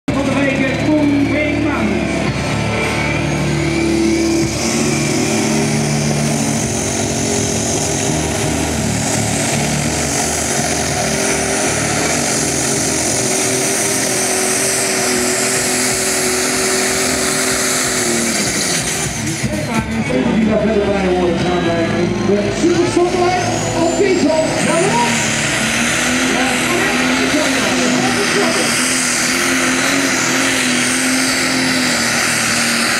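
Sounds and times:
diesel tractor engine at full power: 0.0s - 32.9s.

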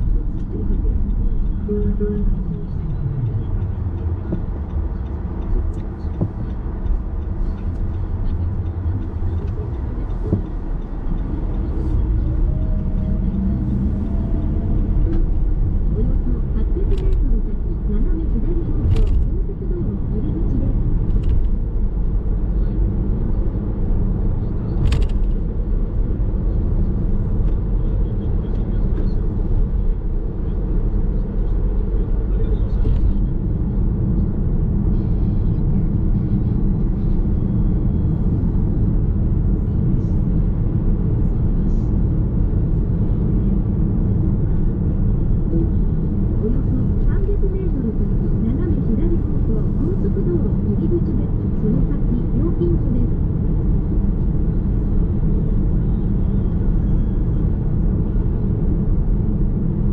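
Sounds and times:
car tyre and engine rumble: 0.0s - 59.9s.

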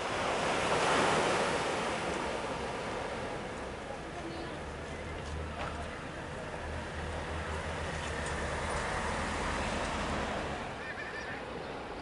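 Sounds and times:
surf washing up beach: 0.0s - 12.0s.

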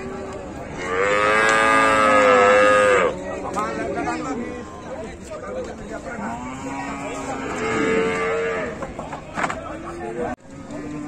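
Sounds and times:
cow mooing: 0.8s - 3.1s, 6.3s - 8.8s.

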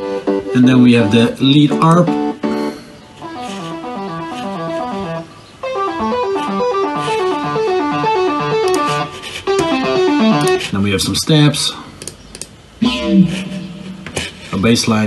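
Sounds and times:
synthesizer lead arpeggio: 12.8s - 14.6s.

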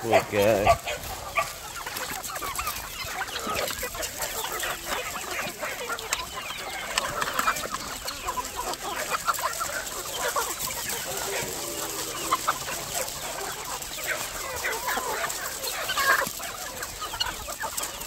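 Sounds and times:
chickens clucking: 0.0s - 18.0s
loud wavering chicken call: 9.4s - 16.4s.

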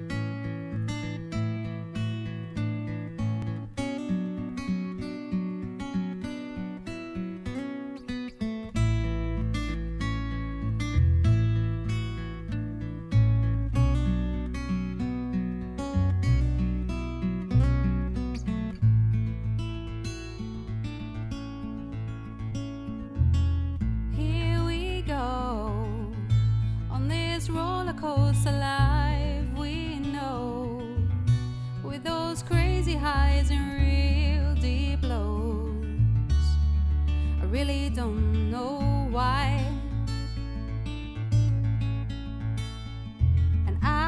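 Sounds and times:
acoustic guitar strumming: 0.0s - 44.0s
bass line: 8.8s - 20.2s, 23.1s - 44.0s.

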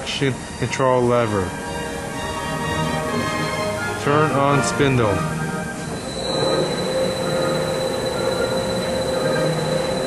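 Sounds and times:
lathe spinning up and running: 0.0s - 10.0s.

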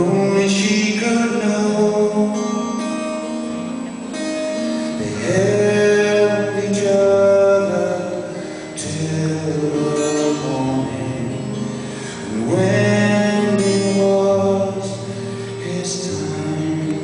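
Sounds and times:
wordless singing: 0.0s - 2.7s, 5.0s - 17.0s
acoustic guitar: 0.0s - 17.0s.

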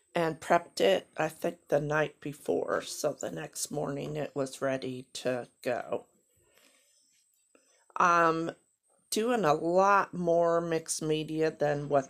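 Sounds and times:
woman's voice: 0.2s - 6.0s, 8.0s - 12.0s.

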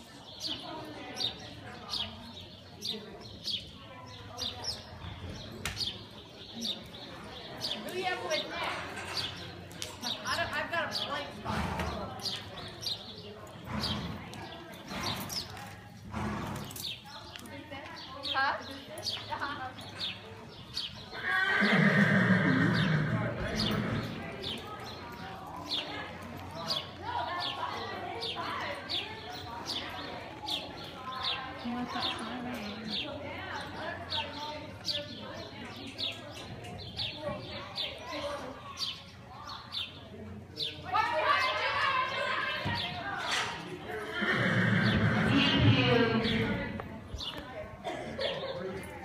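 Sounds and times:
hoofbeats: 13.5s - 17.4s, 21.1s - 24.6s, 42.7s - 47.4s
horse whinnying: 21.2s - 24.1s, 44.0s - 45.6s.

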